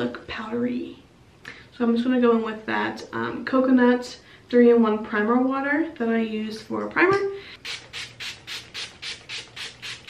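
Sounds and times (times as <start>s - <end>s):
pump spray bottle spraying: 7.6s - 10.0s.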